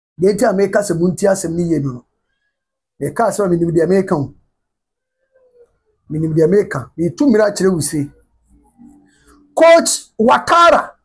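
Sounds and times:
man speaking: 0.2 - 2.0, 3.0 - 4.4, 6.1 - 8.2, 8.8 - 11.0.

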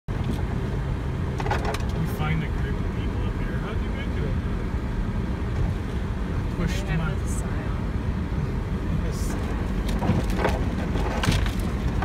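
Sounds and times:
engine and drivetrain rumble: 0.1 - 12.0.

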